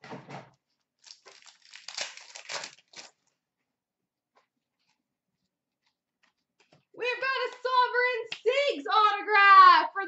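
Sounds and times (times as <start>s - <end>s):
foil wrapper tearing and crinkling: 1.0s - 3.3s.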